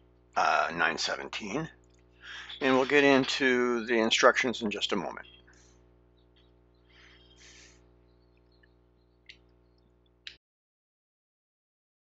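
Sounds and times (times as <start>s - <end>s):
steady low hum: 0.0s - 10.4s.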